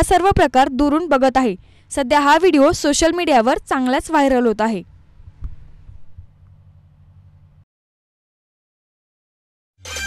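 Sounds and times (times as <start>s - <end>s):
low steady hum: 0.0s - 7.6s.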